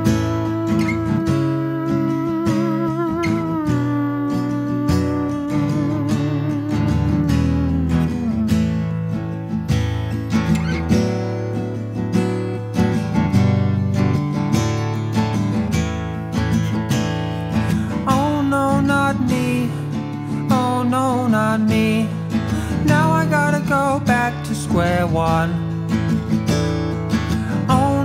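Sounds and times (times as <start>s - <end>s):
acoustic guitar strumming: 0.0s - 28.0s.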